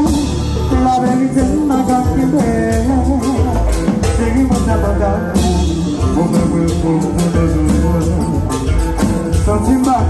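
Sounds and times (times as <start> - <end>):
drum kit: 0.0 - 10.0
electric bass guitar: 0.0 - 10.0
man singing: 0.0 - 10.0.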